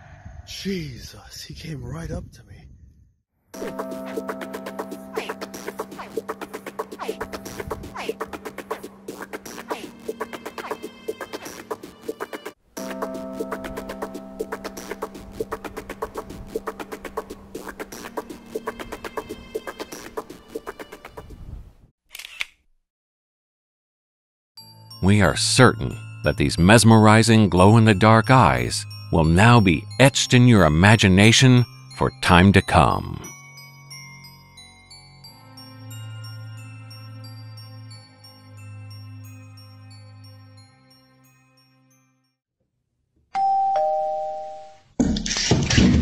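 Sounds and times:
doorbell ding-dong chime: 0:43.4 - 0:44.8.

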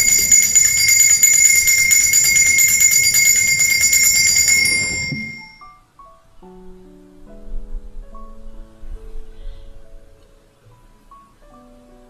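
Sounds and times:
small bells pealing: 0:00.0 - 0:05.8.

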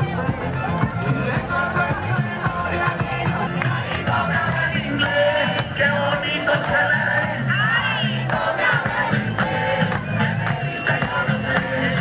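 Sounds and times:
carnival parade music with percussion: 0:00.0 - 0:12.0
crowd shouting: 0:00.0 - 0:12.0.

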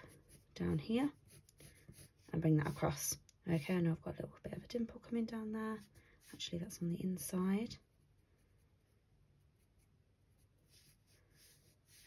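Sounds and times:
pencil scratching on paper: 0:00.0 - 0:03.8, 0:07.7 - 0:12.0.

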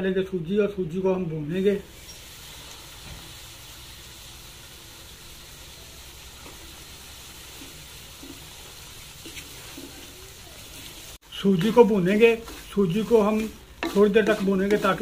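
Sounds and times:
semolina sizzling in hot oil: 0:01.5 - 0:15.0
wooden spatula scraping: 0:07.5 - 0:15.0.

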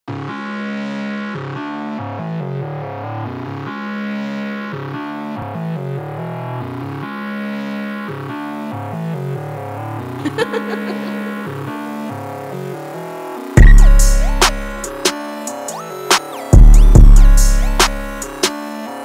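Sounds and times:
dark synthesizer melody: 0:00.1 - 0:19.0.

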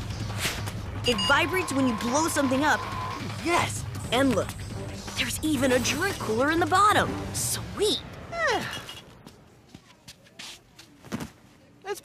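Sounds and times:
soft shuffling: 0:09.2 - 0:11.7.

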